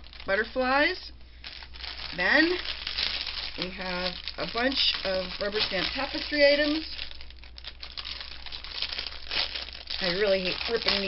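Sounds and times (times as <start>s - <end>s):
plastic bag ripping and crinkling: 0.0s - 0.7s, 1.4s - 11.0s.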